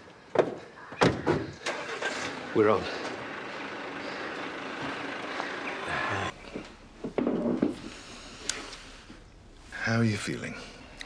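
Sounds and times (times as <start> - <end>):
distant rush: 1.6 - 7.0.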